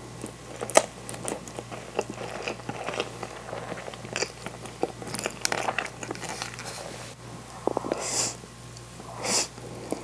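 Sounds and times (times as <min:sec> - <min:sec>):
person chewing food: 0:00.0 - 0:07.0.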